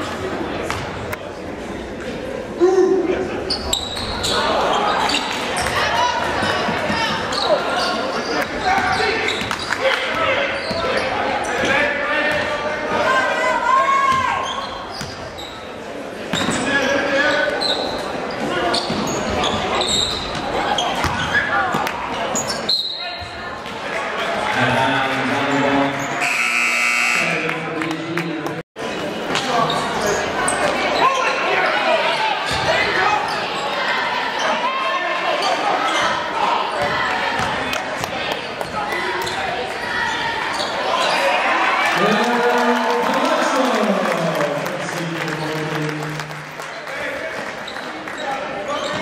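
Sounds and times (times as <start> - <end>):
crowd chatter: 0.0 - 49.0
buzzer: 26.2 - 27.5.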